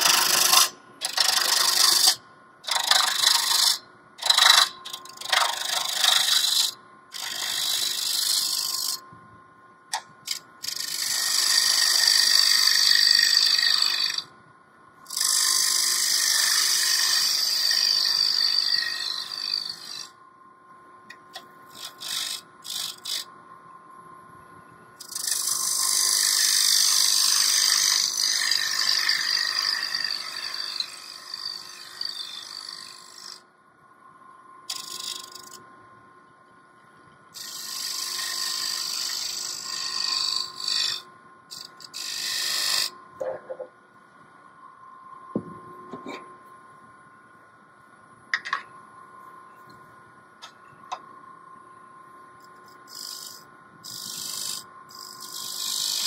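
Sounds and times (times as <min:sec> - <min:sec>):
gouge cutting wood on a lathe: 0:00.0 - 0:09.0, 0:10.3 - 0:14.2, 0:15.1 - 0:20.1, 0:21.8 - 0:23.2, 0:25.1 - 0:33.4, 0:37.4 - 0:42.9, 0:52.9 - 0:56.0
lathe running whine: 0:25.0 - 0:33.4, 0:52.4 - 0:56.0.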